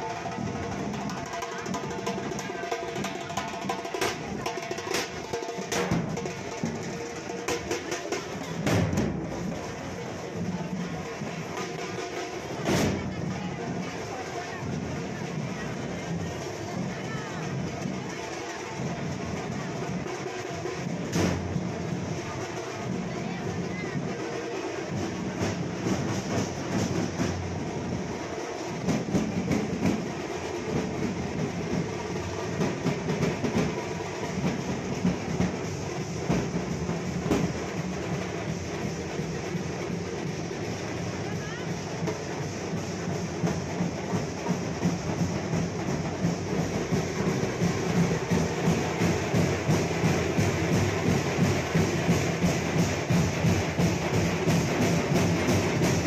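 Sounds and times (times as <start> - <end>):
crowd noise: 0.0 - 56.0
drum group beating large drums: 0.0 - 56.0.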